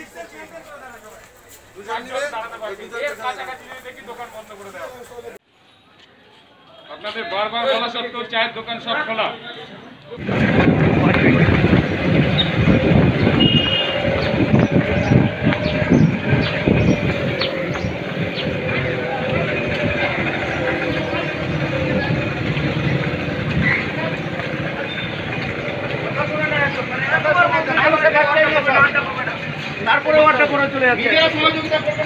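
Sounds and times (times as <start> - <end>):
loud low street rumble: 0.0 - 32.0
indistinct voices: 9.7 - 32.0.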